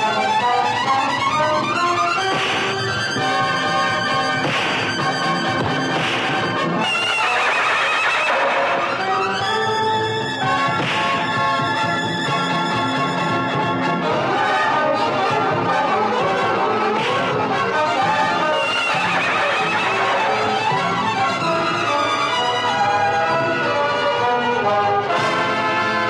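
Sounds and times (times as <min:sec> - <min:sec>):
orchestral film score with brass: 0:00.0 - 0:26.0
horse whinnying: 0:06.8 - 0:09.1, 0:18.5 - 0:20.5.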